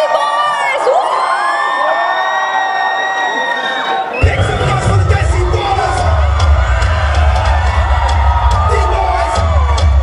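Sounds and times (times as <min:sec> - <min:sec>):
audience cheering and shouting: 0:00.0 - 0:10.0
dance music with heavy bass: 0:04.2 - 0:10.0.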